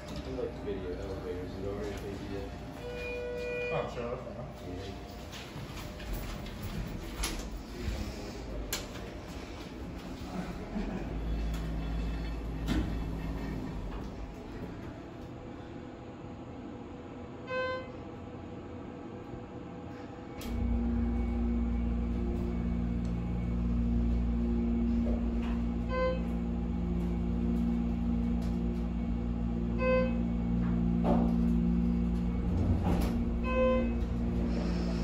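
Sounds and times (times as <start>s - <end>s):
elevator chime: 0.0s - 7.4s, 10.1s - 15.1s, 17.5s - 18.0s, 20.5s - 35.0s
elevator pump motor hum: 0.0s - 35.0s.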